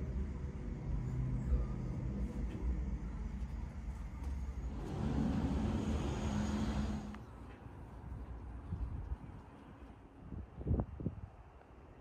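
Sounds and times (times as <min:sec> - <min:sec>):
vehicle engine humming: 0:00.0 - 0:08.5.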